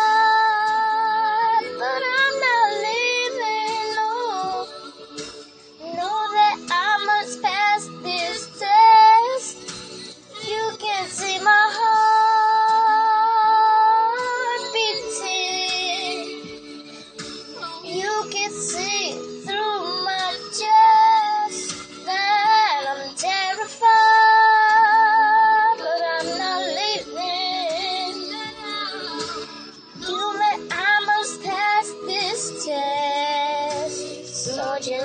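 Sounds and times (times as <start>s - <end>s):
girl singing wordlessly: 0.0s - 4.8s, 5.8s - 9.6s, 10.4s - 16.3s, 17.6s - 35.0s.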